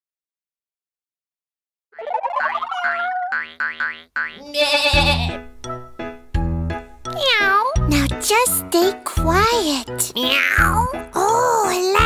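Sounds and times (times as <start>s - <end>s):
wobbly rising pitch glide: 2.0s - 3.5s
playful cartoon music: 2.0s - 3.9s, 4.9s - 12.0s.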